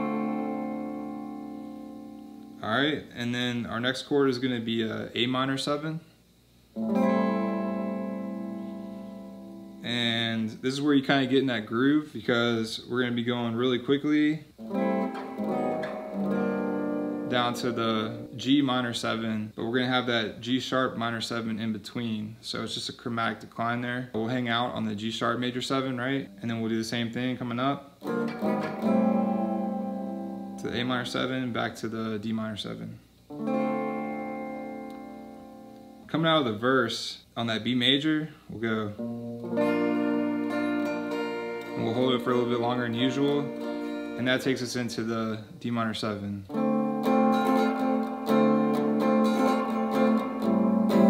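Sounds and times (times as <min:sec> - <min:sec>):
electric guitar chord strummed: 0:00.0 - 0:02.6, 0:06.8 - 0:10.0, 0:14.6 - 0:18.4, 0:28.0 - 0:31.2, 0:33.3 - 0:36.1, 0:39.0 - 0:44.7, 0:46.5 - 0:51.0.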